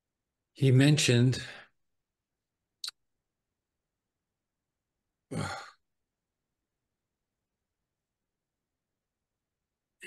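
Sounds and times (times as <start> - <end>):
man sighing: 5.3 - 5.8.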